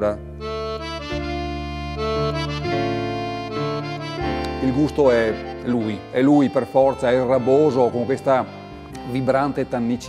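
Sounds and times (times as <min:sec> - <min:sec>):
reedy instrument chords: 0:00.0 - 0:10.0.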